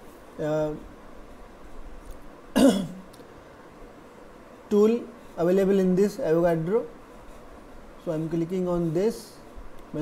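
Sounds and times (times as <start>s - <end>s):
man coughing: 2.6s - 3.0s.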